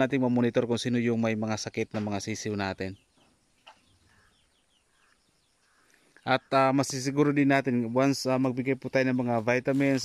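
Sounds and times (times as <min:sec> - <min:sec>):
high bird chirps: 0:02.3 - 0:07.6.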